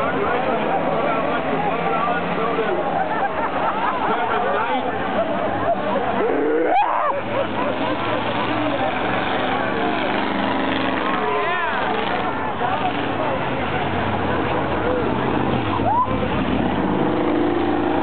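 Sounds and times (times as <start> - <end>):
crowd voices and shouts: 0.0 - 18.0
race car engines running hard: 0.0 - 18.0.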